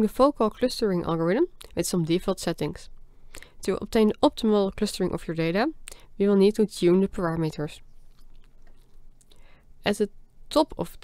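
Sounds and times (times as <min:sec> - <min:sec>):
woman speaking: 0:00.0 - 0:02.9, 0:03.6 - 0:07.8, 0:09.8 - 0:11.0
soft in-breath: 0:03.1 - 0:03.6, 0:09.3 - 0:09.8.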